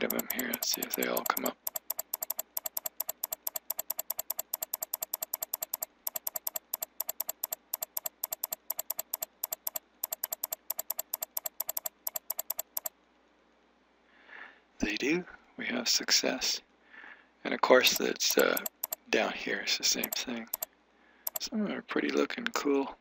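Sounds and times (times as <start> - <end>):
mouse button clicking rapidly: 0.0 - 12.9, 17.8 - 19.0, 19.9 - 20.7, 21.3 - 21.5.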